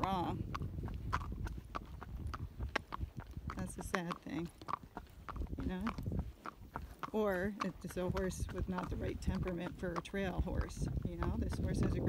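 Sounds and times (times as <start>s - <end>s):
horse hooves on gravel: 0.0s - 12.0s.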